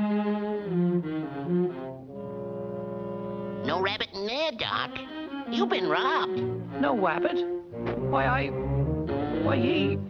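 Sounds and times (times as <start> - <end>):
low bowed strings: 6.4 - 10.0.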